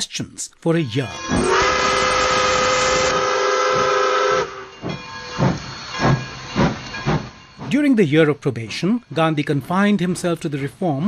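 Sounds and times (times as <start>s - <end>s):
steam locomotive whistle: 1.1s - 5.5s
hissing steam: 1.2s - 7.8s
soft locomotive chuffs: 1.2s - 11.0s.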